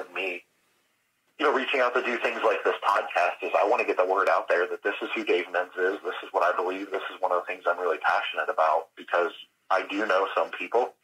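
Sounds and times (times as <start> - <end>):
man talking over phone: 0.0 - 0.4, 1.4 - 11.0.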